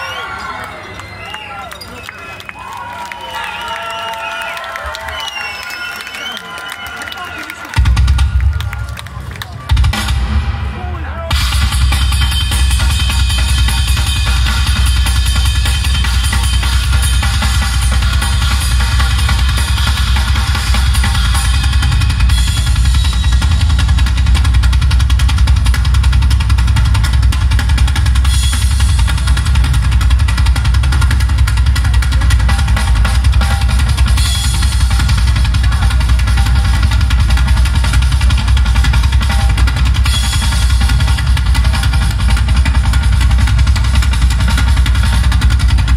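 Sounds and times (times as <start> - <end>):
heavy drums: 7.6 - 45.9
live rock band playing: 11.3 - 45.9.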